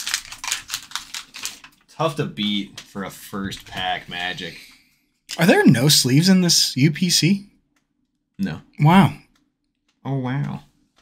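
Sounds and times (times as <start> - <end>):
trading cards clicking and rustling: 0.0 - 4.3.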